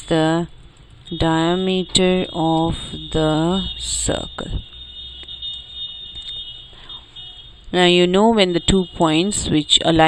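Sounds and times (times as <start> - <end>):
high-pitched electrical whine: 0.0 - 10.0.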